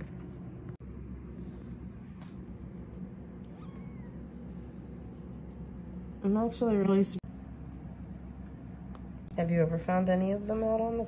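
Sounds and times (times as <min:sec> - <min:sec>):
kitten mewing: 0:03.4 - 0:04.3.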